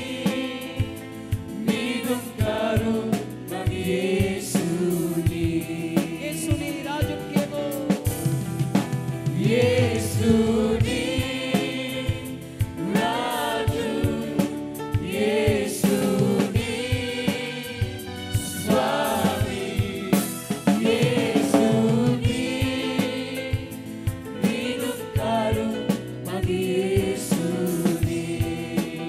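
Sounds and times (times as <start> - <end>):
man singing lead: 0.0 - 8.3, 26.3 - 29.0
bass guitar: 0.0 - 29.0
percussive beat: 0.0 - 29.0
backing vocals: 15.1 - 23.8.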